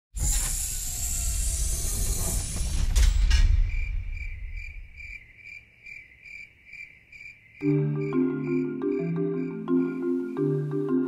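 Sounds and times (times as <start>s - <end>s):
loud rushing rumbling noise: 1.4s - 5.2s
crickets chirping: 2.6s - 10.8s.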